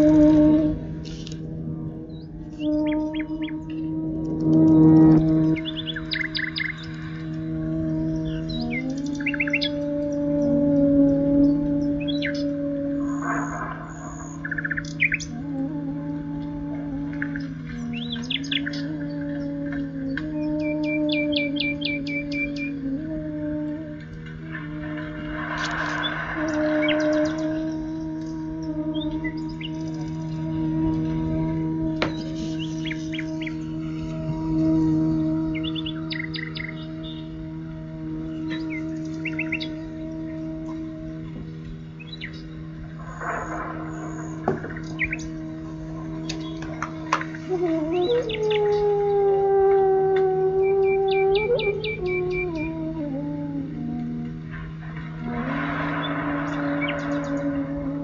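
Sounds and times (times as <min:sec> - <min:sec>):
birdsong chirping: 0:00.0 - 0:23.2, 0:23.9 - 0:34.8, 0:35.4 - 0:58.0
low drone: 0:00.0 - 0:58.0
slow raga-style music: 0:00.0 - 0:58.0.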